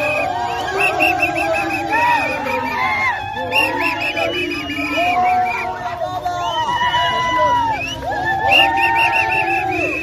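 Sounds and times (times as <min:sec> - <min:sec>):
crowd chanting: 0:00.0 - 0:05.8.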